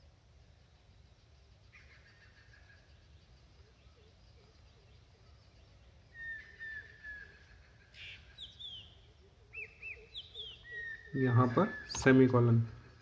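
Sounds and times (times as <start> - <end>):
faint bird chirps: 0.0 - 13.0.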